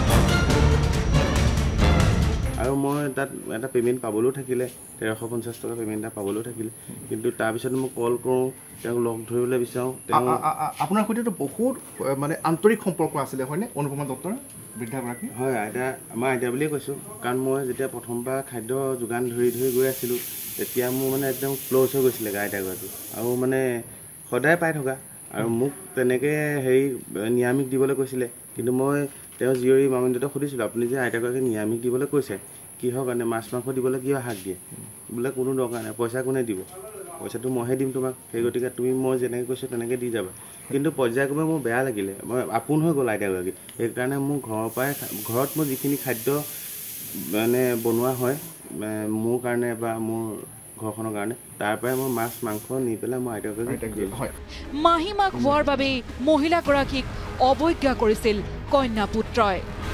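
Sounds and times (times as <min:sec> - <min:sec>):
man talking: 0:02.5 - 0:46.5, 0:47.2 - 0:54.4
insect drone: 0:09.6 - 0:36.6, 0:37.3 - 0:54.7
hiss: 0:19.3 - 0:24.0, 0:44.6 - 0:48.8, 0:51.7 - 0:53.1.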